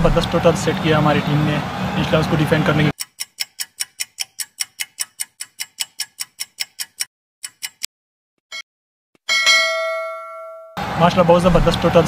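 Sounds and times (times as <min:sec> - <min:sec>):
clock ticking quickly: 0:02.9 - 0:07.9
bell-like ding: 0:09.3 - 0:10.8.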